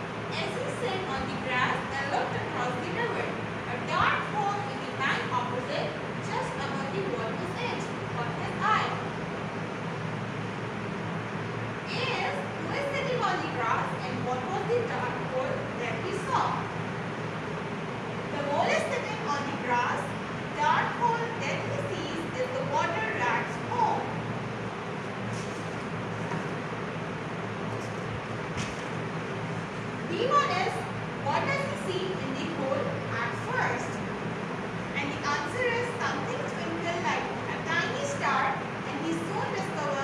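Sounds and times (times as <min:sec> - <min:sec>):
steady background hum: 0:00.0 - 0:40.0.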